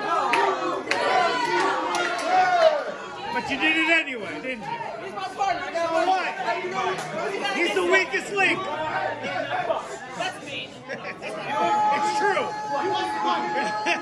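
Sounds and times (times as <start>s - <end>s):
crowd chatter: 0.0s - 14.0s.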